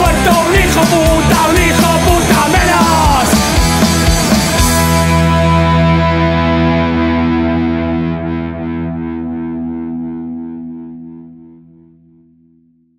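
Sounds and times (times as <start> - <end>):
distorted electric guitar chord ringing: 0.0 - 12.7.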